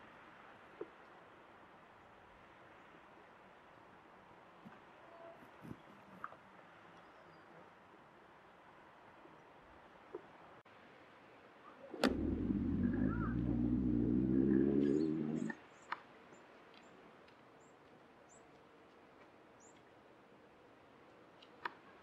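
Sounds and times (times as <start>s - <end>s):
faint high chirps: 12.1s - 15.6s.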